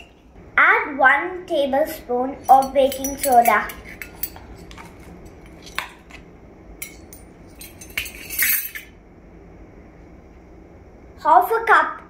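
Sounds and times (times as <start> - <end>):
metal spoons clinking: 2.4 - 6.0, 6.8 - 8.9.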